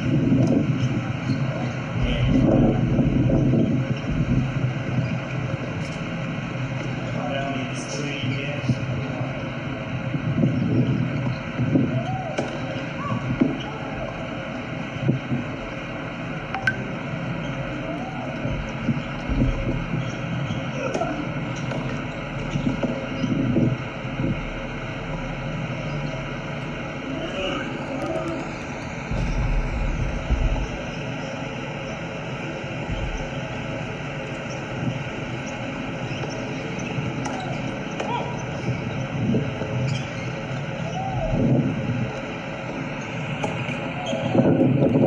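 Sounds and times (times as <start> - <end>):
background hum and low rumble: 0.0 - 45.0.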